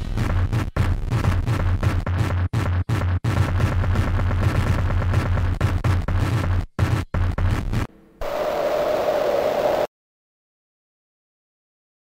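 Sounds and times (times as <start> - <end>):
hissing static: 7.7 - 9.9
steady hum-like tone: 7.9 - 9.9.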